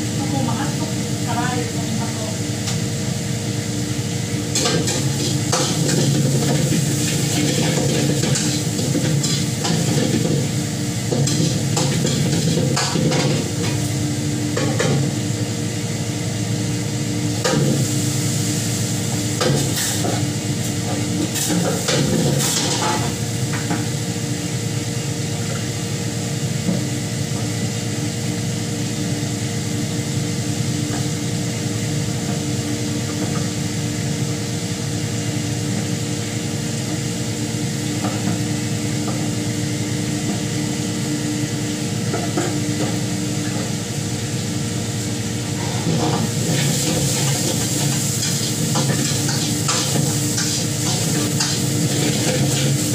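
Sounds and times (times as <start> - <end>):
steady kitchen hum: 0.0 - 52.9
food sizzling: 4.3 - 14.2, 45.8 - 52.9.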